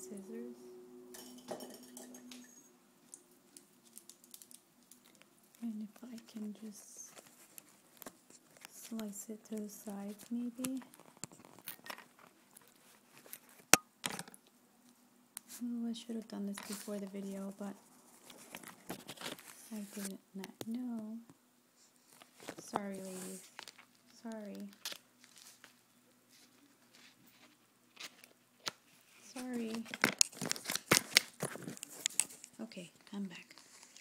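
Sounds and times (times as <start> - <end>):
small objects clicking and tapping: 1.1 - 5.3
plastic bag crinkling: 3.1 - 9.0, 29.3 - 34.0.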